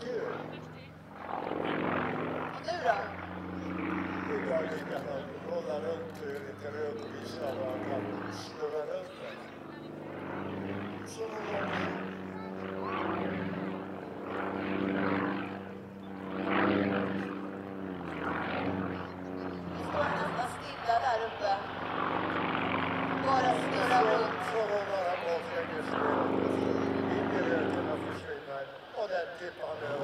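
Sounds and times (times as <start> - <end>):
aerobatic plane engine and propeller: 0.0 - 30.0.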